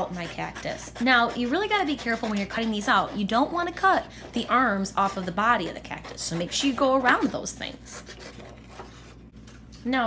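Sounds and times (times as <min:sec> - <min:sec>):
woman speaking: 0:00.0 - 0:08.2, 0:09.8 - 0:10.0.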